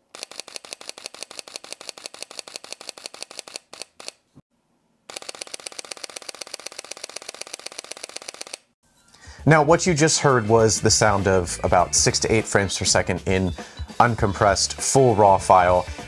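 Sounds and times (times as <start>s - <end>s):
camera shutter burst clicks: 0.1s - 4.2s, 5.1s - 8.8s.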